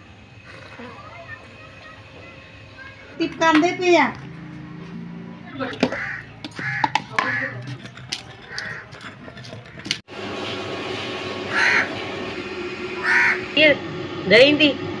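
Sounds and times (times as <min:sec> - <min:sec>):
crows cawing: 0:05.7 - 0:07.8, 0:08.4 - 0:09.0, 0:11.5 - 0:12.0, 0:13.0 - 0:13.6
pestle knocking in stone mortar: 0:05.8 - 0:10.0
steady hum: 0:08.9 - 0:15.0.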